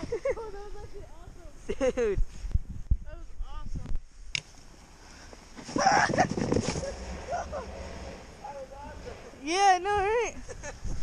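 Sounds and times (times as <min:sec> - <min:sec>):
boy laughing: 0:00.0 - 0:02.2, 0:05.8 - 0:07.8, 0:10.2 - 0:11.0.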